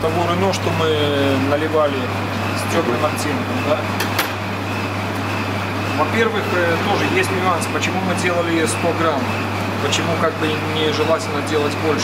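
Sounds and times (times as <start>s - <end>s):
low machinery hum: 0.0s - 12.0s.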